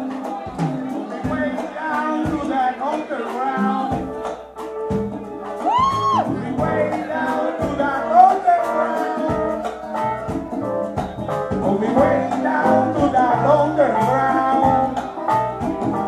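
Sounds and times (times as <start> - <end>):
person singing: 0.0 - 4.3, 5.4 - 16.0
congas: 0.0 - 16.0
salsa band playing: 0.0 - 16.0
trombone: 0.0 - 16.0.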